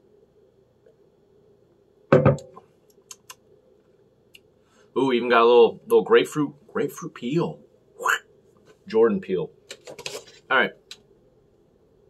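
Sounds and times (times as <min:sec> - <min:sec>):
lip smacks: 0:02.9 - 0:03.4.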